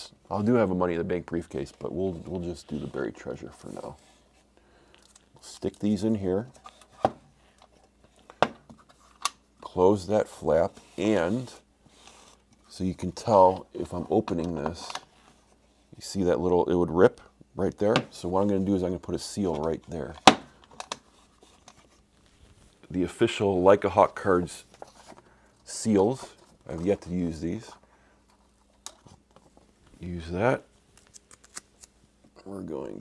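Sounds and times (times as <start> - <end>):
man speaking: 0.0 - 4.0, 5.4 - 6.6, 9.6 - 11.7, 12.7 - 15.0, 16.0 - 20.2, 22.8 - 24.7, 25.6 - 27.8, 30.0 - 30.7, 32.4 - 33.0.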